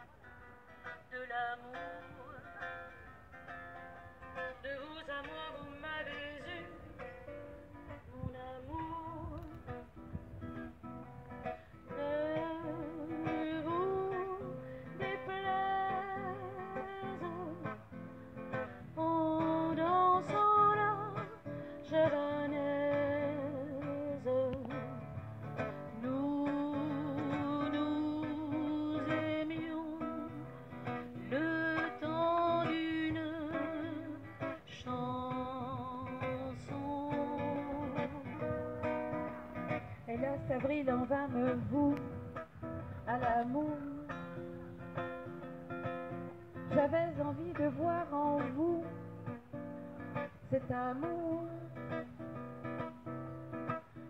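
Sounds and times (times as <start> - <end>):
guitar accompaniment: 0.0 - 54.0.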